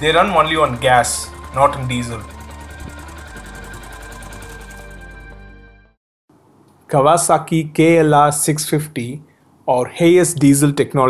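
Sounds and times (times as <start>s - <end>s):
motorcycle engine idling: 0.0s - 5.4s
background music: 0.0s - 6.0s.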